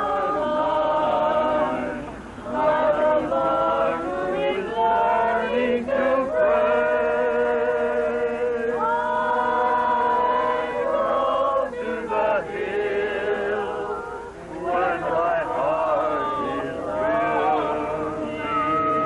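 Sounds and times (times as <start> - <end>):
group singing unaccompanied: 0.0 - 19.0.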